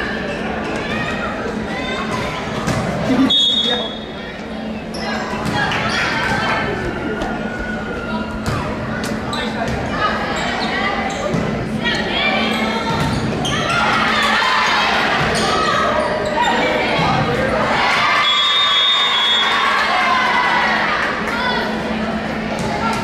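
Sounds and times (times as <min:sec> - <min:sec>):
players calling and shouting: 0:00.2 - 0:23.0
high whistle tone: 0:03.3 - 0:04.0.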